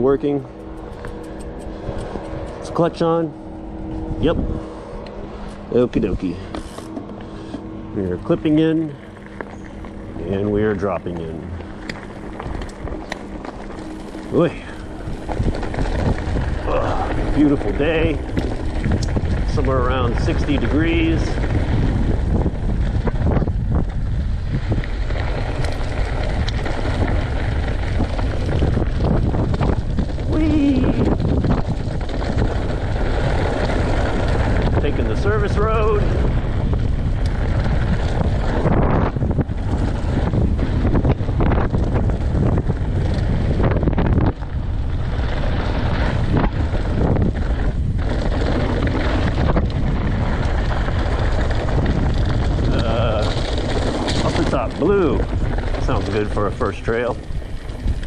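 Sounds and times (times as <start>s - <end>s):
bike tyres crunching on gravel: 0.0s - 58.0s
wind buffeting microphone: 0.0s - 58.0s
small stones ticking: 11.0s - 36.0s, 46.4s - 58.0s
person exclaiming: 16.6s - 17.2s, 30.3s - 31.0s.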